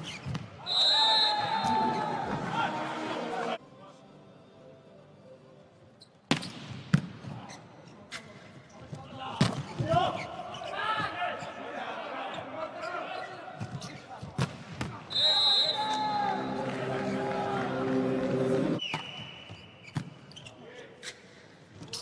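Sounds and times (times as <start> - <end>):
referee's whistle: 0.6 - 2.0, 15.1 - 16.6, 18.8 - 19.8
players calling out: 15.1 - 18.8.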